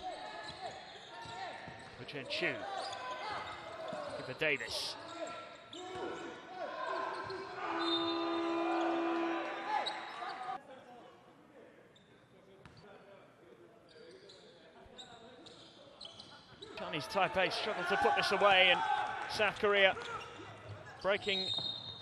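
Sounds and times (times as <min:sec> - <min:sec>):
faint court sounds: 0:00.4 - 0:10.6
crowd noise: 0:06.0 - 0:10.6, 0:16.7 - 0:21.5
long steady horn tone: 0:07.7 - 0:09.7.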